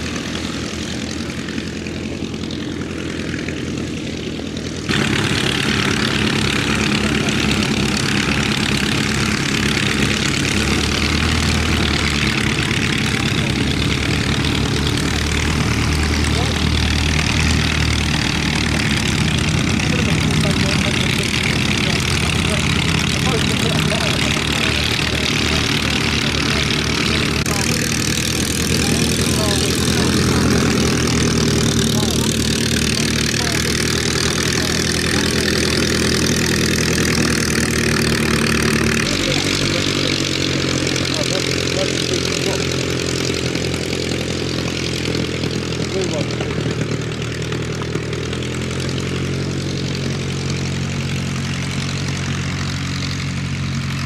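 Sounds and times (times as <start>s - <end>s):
biplane piston engines idling: 0.0s - 54.0s.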